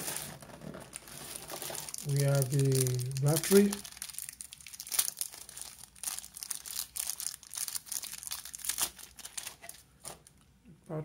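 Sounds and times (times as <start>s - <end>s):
plastic wrapping crinkling: 0.0s - 10.4s.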